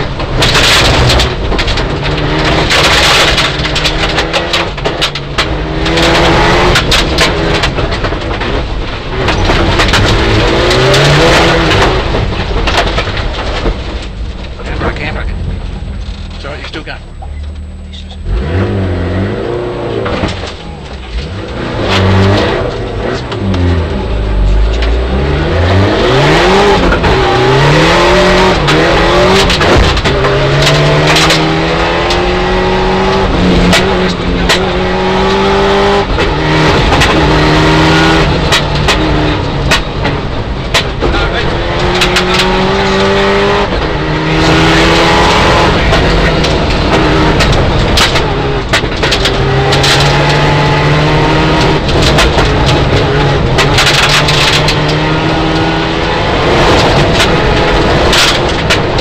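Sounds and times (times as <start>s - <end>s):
sharp clicks and knocks: 0.0s - 18.3s, 20.0s - 59.0s
rally car engine revving: 0.0s - 59.0s.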